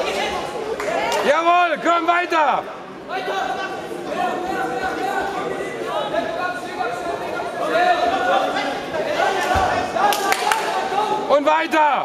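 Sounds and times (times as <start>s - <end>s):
overlapping voices in echoing hall: 0.0s - 12.0s.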